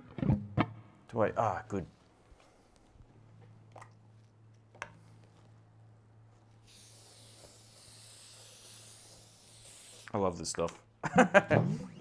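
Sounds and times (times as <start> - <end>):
aerosol spray hiss: 6.6 - 10.1.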